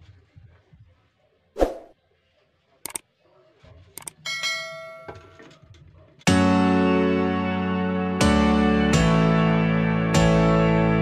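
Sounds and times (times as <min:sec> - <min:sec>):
mouse clicks: 0:02.8 - 0:03.0
bell chime: 0:04.3 - 0:05.4.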